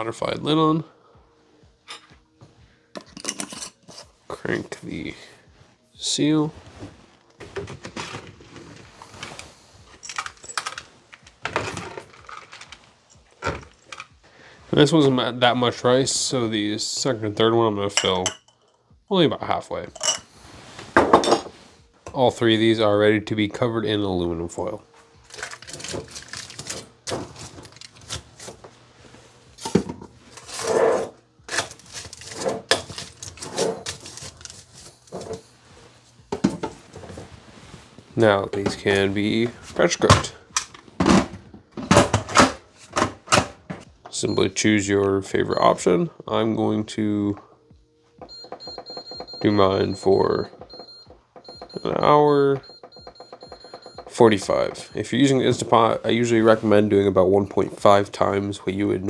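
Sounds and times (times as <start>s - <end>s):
aluminium foil crinkling: 25.2s - 28.4s, 31.5s - 35.1s.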